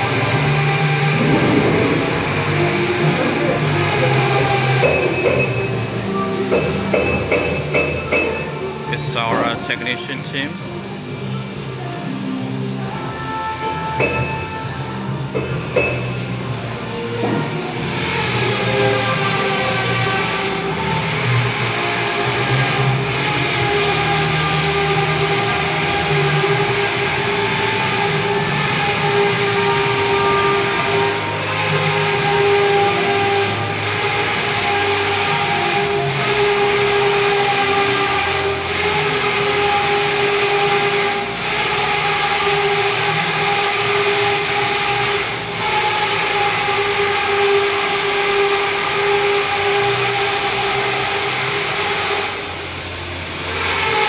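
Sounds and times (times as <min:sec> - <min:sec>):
factory machinery drone: 0:00.0 - 0:54.0.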